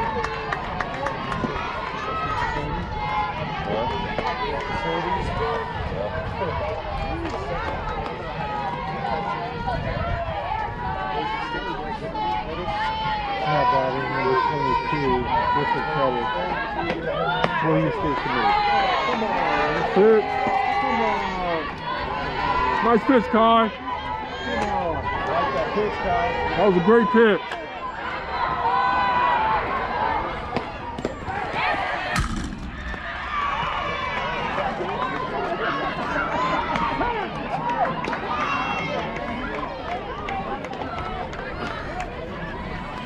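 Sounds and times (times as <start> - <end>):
voices calling and chattering: 0.0 - 43.0.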